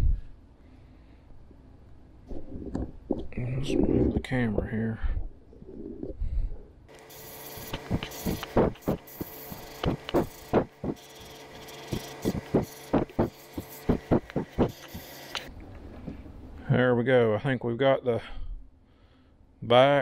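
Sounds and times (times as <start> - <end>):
short loud airbrush bursts: 6.9 - 15.5
airbrush air hiss: 7.0 - 15.5.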